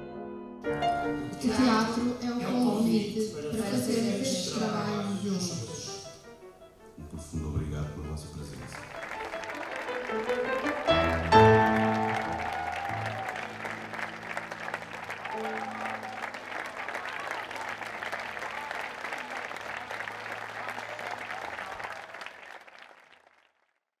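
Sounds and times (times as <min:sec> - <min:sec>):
held music notes: 0:00.0 - 0:14.6
audience applauding: 0:08.3 - 0:23.8.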